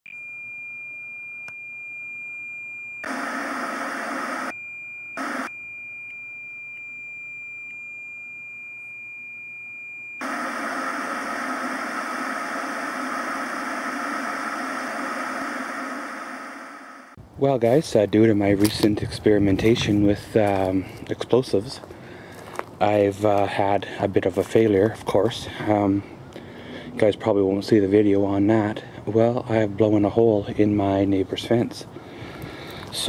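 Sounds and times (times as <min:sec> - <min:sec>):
tv static hiss: 0:03.0 - 0:04.5, 0:05.2 - 0:05.5, 0:10.2 - 0:17.2.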